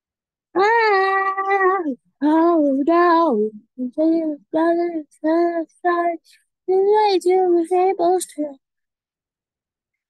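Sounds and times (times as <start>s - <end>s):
child singing: 0.6s - 8.6s.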